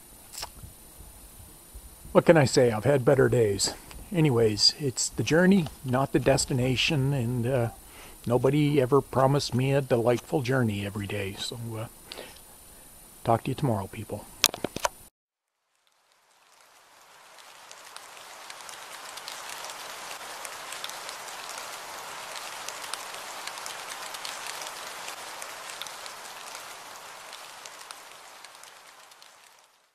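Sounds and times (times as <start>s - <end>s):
rain pattering: 0.0s - 15.1s, 15.7s - 29.9s.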